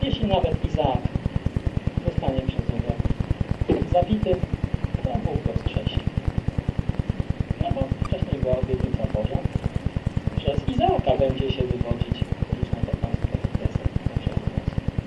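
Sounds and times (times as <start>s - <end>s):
rapid low thumping pulse: 0.0s - 15.0s
person speaking indistinctly: 7.4s - 14.8s.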